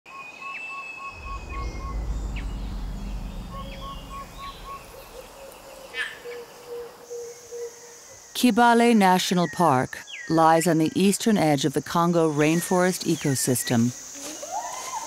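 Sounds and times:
low rumble: 0:01.1 - 0:06.0.

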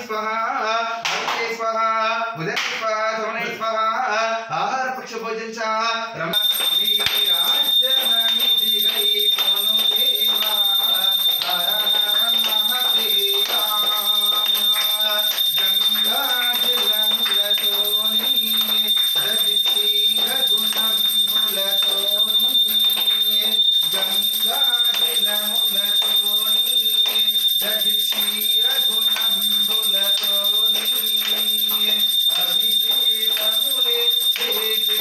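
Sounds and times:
person chanting: 0:06.0 - 0:35.0.

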